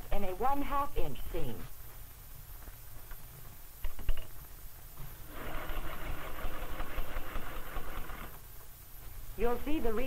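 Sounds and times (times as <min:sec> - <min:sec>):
sewing machine stitching: 0:05.3 - 0:08.4.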